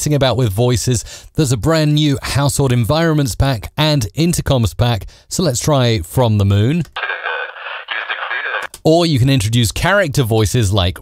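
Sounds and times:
man's thin radio-like voice: 7.0 - 8.7.

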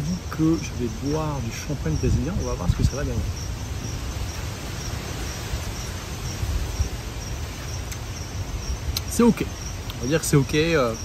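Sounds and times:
night insects chirping: 0.0 - 11.0.

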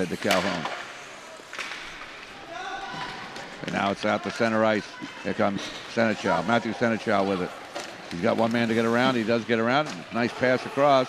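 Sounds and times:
skates scraping on ice: 3.0 - 11.0.

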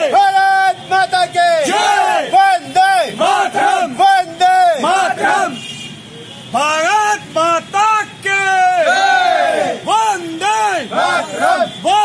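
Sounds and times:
men shouting slogans in chorus: 0.0 - 5.6, 6.9 - 12.0.

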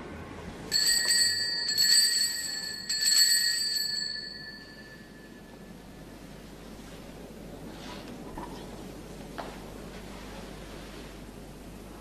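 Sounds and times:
small altar bell ringing: 0.7 - 6.2.

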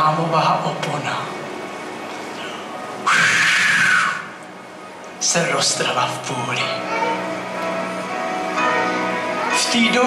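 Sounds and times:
keyboard chords: 4.4 - 10.0.

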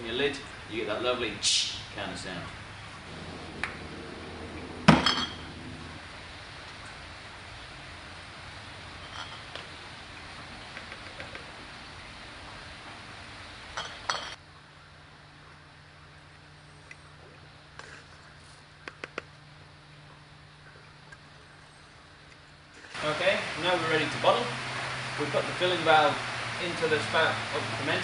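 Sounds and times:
glass bottles clinking: 4.9 - 5.6, 13.8 - 14.4.

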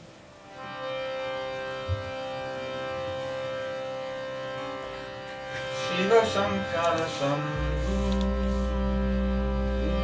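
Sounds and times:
harmonium drone chord: 0.0 - 10.0.

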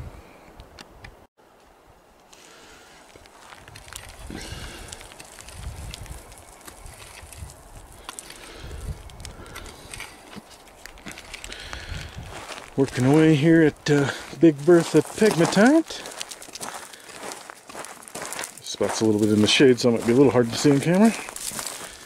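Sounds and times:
pick digging into gravelly soil: 3.4 - 21.9.

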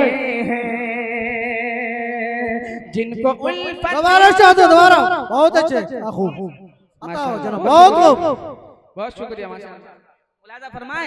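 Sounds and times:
man singing unaccompanied: 0.0 - 6.5.

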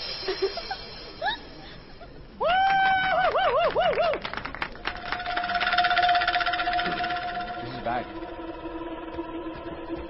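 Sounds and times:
rapid rattling pulse: 0.0 - 2.4, 4.3 - 10.0
loud buzzing tone: 4.9 - 10.0.

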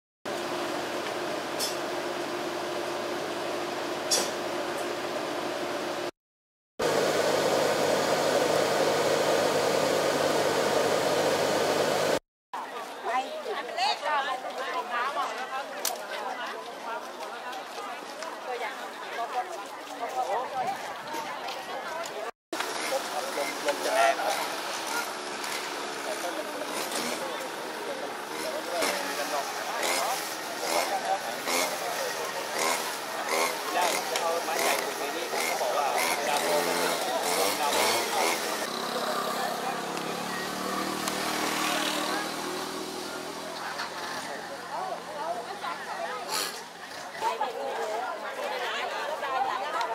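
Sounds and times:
air-conditioning blower: 6.8 - 12.2
people chattering outdoors: 12.0 - 49.9.

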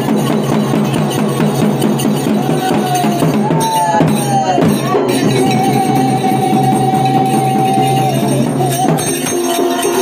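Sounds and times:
hand-played barrel drum: 0.0 - 10.0.

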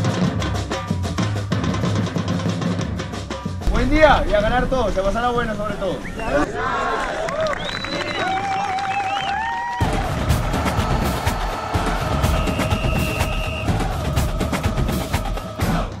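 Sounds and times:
snare and bass drum line: 9.8 - 16.0.

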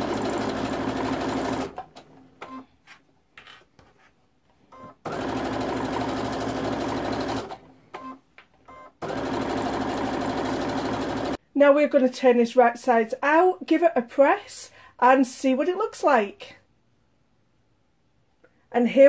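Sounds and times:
electric sewing machine stitching: 0.0 - 2.0, 5.0 - 7.6, 9.0 - 11.4.

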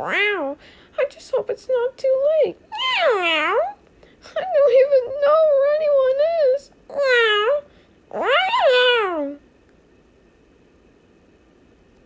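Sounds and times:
cartoon cat meow: 0.0 - 0.6, 2.7 - 3.8, 6.9 - 7.6, 8.2 - 9.4.

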